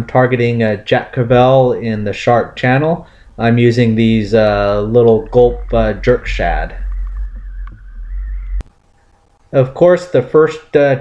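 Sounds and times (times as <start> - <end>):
wind rumble on microphone: 3.3 - 8.6.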